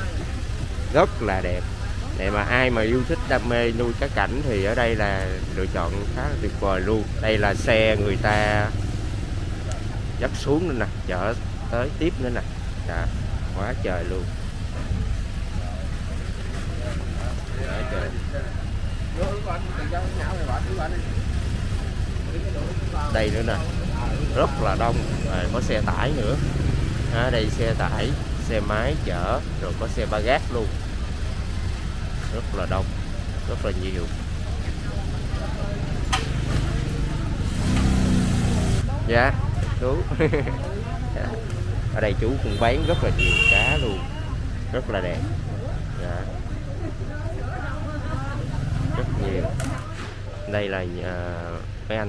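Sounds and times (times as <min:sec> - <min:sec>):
faint voices: 0:00.0 - 0:52.0
traffic rumble: 0:00.0 - 0:52.0
vehicle engine running: 0:00.0 - 0:52.0.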